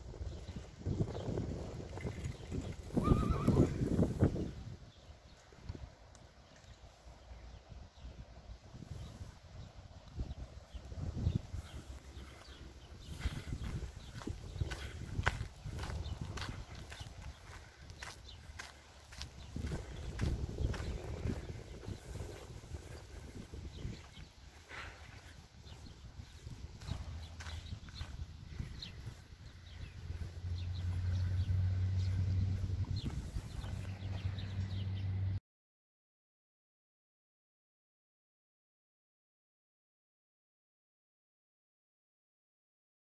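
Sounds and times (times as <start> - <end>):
horse hooves clicking and shuffling: 0.0 - 4.3, 9.4 - 35.1
low rumble: 26.7 - 35.4.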